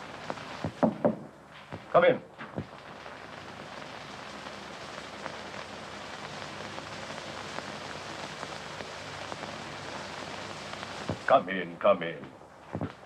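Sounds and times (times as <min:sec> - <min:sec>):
film soundtrack hiss and crackle: 0:00.0 - 0:13.0.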